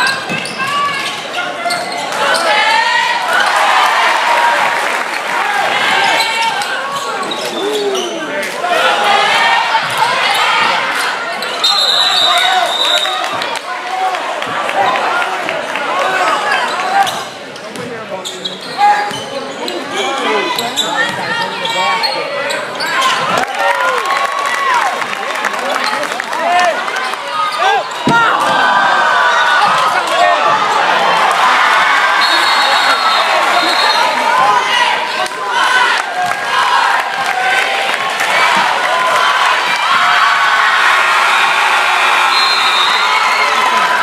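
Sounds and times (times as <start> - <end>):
voices in echoing hall: 0.0 - 44.0
referee's whistle: 11.5 - 13.3, 32.1 - 34.3, 42.2 - 43.6.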